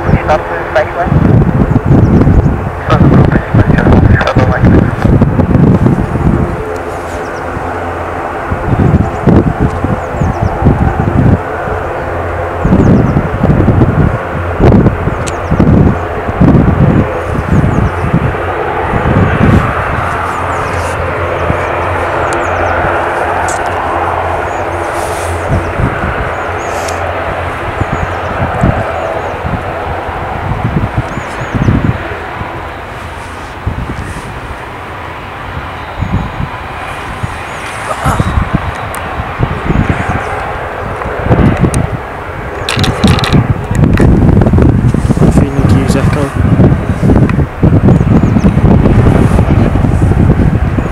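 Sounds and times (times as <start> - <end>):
turboprop engines droning: 0.0 - 50.9
wind buffeting microphone: 0.0 - 50.9.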